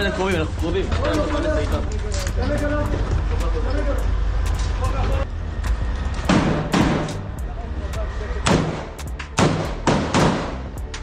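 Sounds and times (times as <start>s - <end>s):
men's voices: 0.0s - 5.3s
low rumble of wind: 0.0s - 11.0s.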